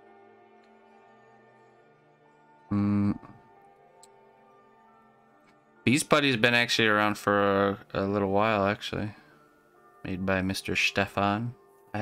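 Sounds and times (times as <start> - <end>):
soft ambient music: 0.0 - 12.0.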